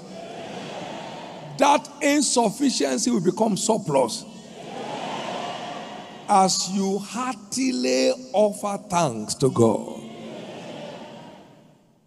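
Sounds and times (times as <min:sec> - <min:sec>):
auditorium murmur and echo: 0:00.0 - 0:12.0.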